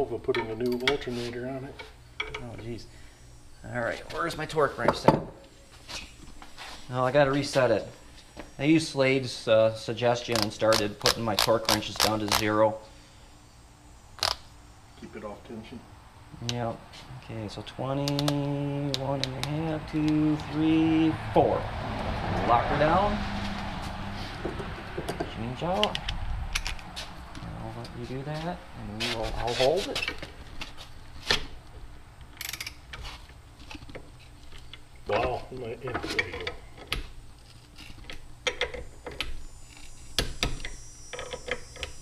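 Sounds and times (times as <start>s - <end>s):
faint room hum: 0.0s - 21.8s, 24.2s - 42.0s.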